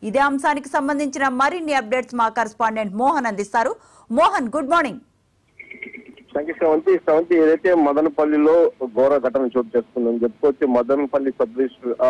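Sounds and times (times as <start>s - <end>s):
news reader speaking: 5.6s - 12.0s.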